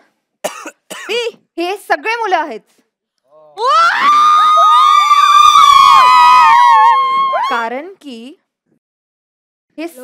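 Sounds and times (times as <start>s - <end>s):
children cheering and shouting: 3.6s - 7.6s.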